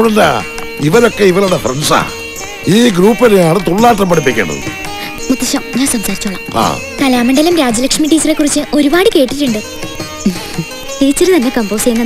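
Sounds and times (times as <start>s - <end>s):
background music: 0.0s - 12.0s
voices talking: 0.0s - 12.0s.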